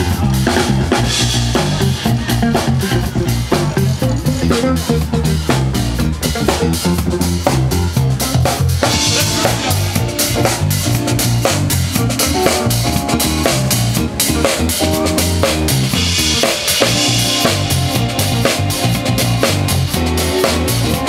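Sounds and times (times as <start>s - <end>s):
live band playing a groove: 0.0s - 21.0s.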